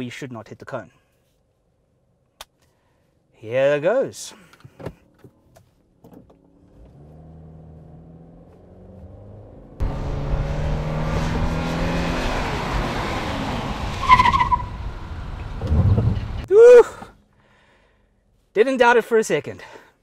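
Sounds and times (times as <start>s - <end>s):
car engine pulling: 6.3s - 16.5s
tyre and wind noise: 14.0s - 16.5s.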